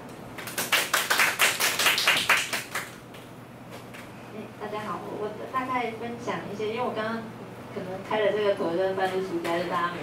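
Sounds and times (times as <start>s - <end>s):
group of people clapping: 0.4s - 3.0s.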